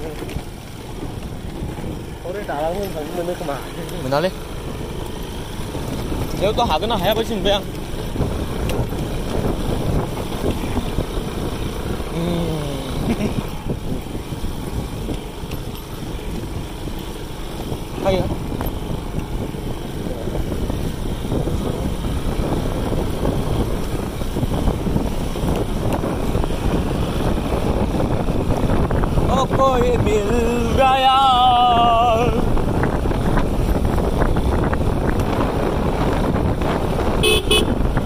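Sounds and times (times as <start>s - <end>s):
scooter engine rumble: 0.0s - 38.0s
wind noise on microphone: 0.0s - 38.0s.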